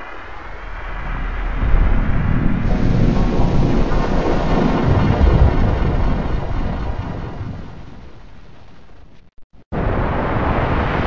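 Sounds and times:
harsh distorted electronic rumble: 0.0s - 10.0s.

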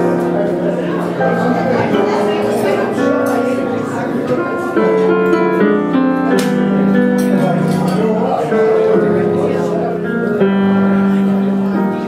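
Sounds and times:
jazz piano: 0.0s - 12.0s.

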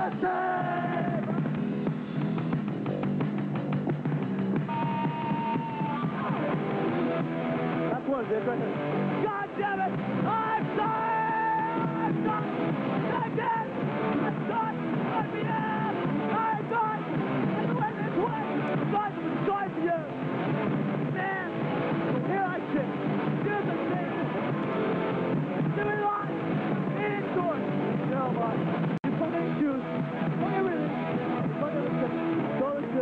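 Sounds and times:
shouted vocals: 0.0s - 1.4s, 4.7s - 6.7s, 9.2s - 20.1s, 25.6s - 27.6s
hardcore punk band playing live: 0.0s - 33.0s.

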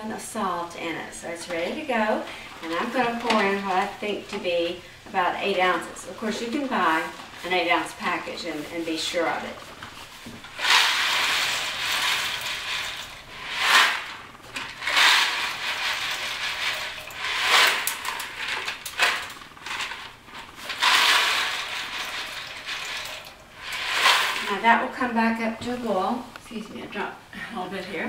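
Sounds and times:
boiling water: 0.0s - 28.0s
dry macaroni rattling into a pot: 10.4s - 24.6s.

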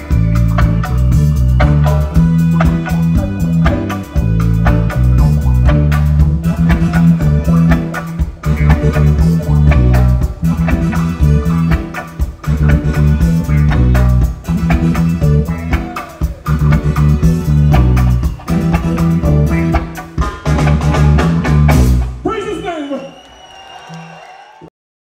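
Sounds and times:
heavy repeating bass guitar line: 0.0s - 22.4s
reggae band instrumental: 0.0s - 24.5s.

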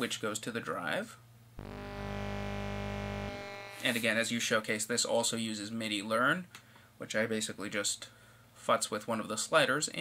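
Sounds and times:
steady synthesizer note: 1.6s - 4.0s.

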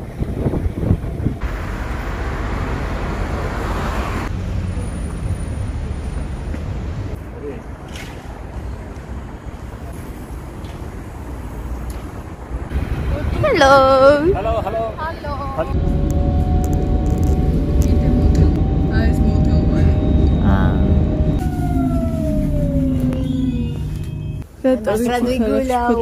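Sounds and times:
wind rumble on microphone: 0.0s - 1.8s, 12.1s - 24.4s
traffic noise: 0.0s - 26.0s.

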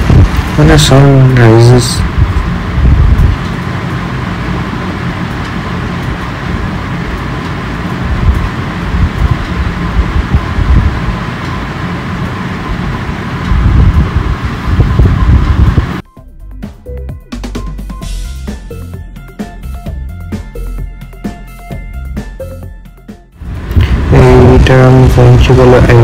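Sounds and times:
wind buffeting microphone: 0.0s - 0.9s, 2.0s - 3.8s, 8.0s - 11.3s, 12.6s - 16.0s, 23.4s - 26.0s
road and engine noise: 0.0s - 16.0s, 23.4s - 26.0s
background music with a beat: 16.0s - 23.4s.

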